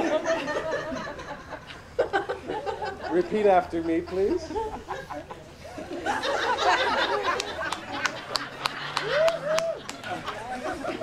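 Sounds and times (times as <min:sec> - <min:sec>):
voices chattering: 0:00.0 - 0:11.0
woman laughing: 0:04.2 - 0:05.4.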